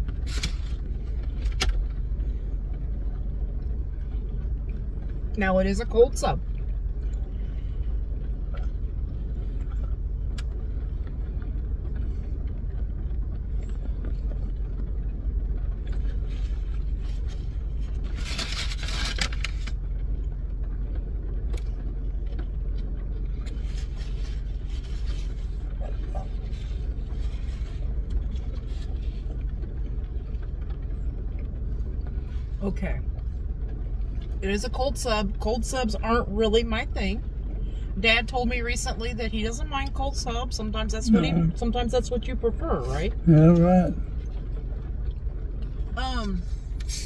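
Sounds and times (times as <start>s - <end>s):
car cabin rumble: 0.0s - 47.0s.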